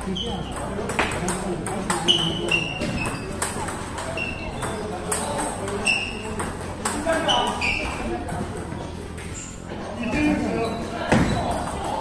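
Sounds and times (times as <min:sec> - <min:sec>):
voices murmuring: 0:00.0 - 0:12.0
table tennis balls clicking: 0:00.2 - 0:09.4.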